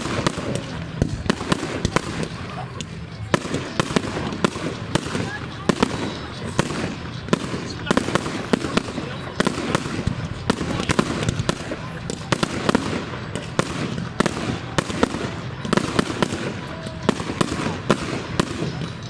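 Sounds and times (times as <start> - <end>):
continuous noise: 0.0 - 19.0
fireworks bangs: 0.0 - 19.0.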